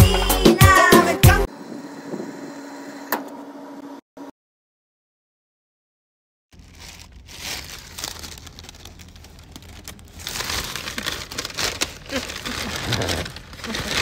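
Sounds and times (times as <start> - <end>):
paper bag crinkling: 6.6 - 14.0.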